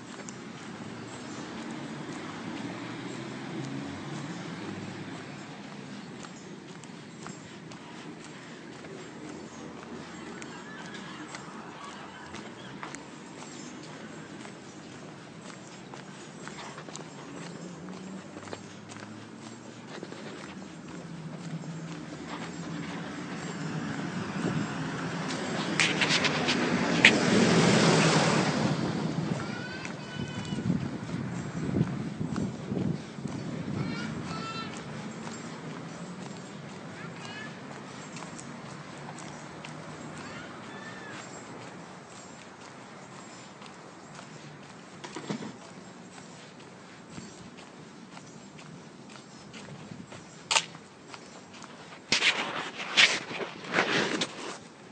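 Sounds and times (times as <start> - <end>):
outdoor background noise: 0.0 - 54.9
road traffic hum: 0.0 - 54.9
wind buffeting microphone: 22.0 - 36.3, 48.7 - 50.6.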